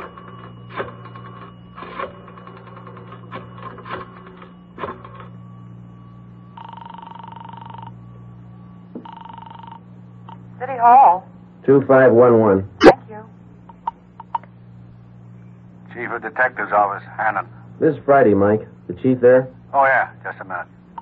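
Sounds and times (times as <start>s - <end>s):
buzzing telephone ring: 0.0s - 21.0s
steady low hum: 0.0s - 21.0s.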